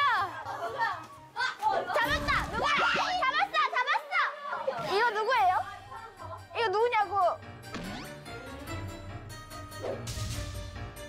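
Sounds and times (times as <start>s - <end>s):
women shrieking and laughing: 0.0s - 6.2s.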